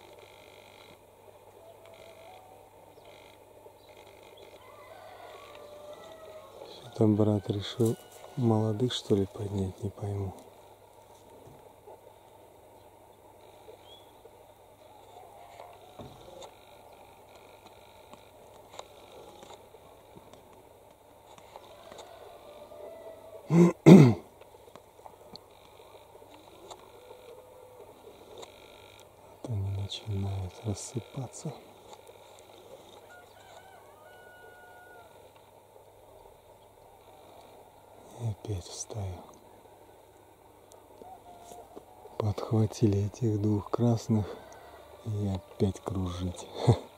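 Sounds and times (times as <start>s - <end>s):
faint chirps: 0.0s - 11.1s, 12.2s - 20.1s
faint rooster crow: 1.5s - 3.4s, 4.3s - 10.3s, 14.8s - 17.3s, 21.3s - 23.6s, 25.4s - 31.6s, 32.4s - 35.6s, 36.8s - 46.9s.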